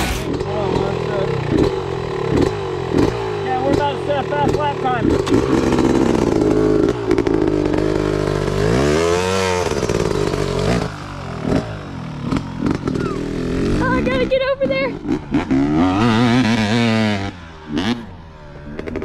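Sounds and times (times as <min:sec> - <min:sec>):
dirt bike engine idling and revving: 0:00.0 - 0:19.0.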